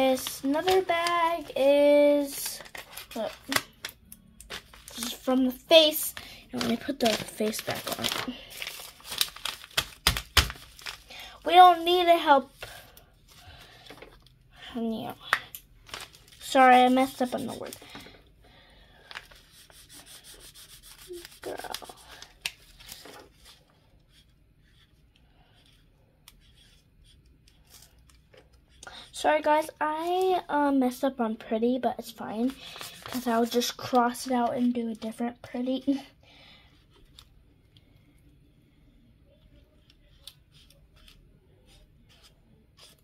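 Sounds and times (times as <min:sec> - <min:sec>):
marker scribbling on paper: 0:19.5 - 0:22.0, 0:41.7 - 0:43.0.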